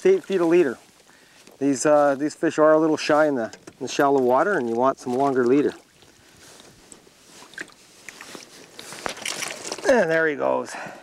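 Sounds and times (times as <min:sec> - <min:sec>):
water sloshing: 0:00.0 - 0:10.3
water splash: 0:07.4 - 0:08.4.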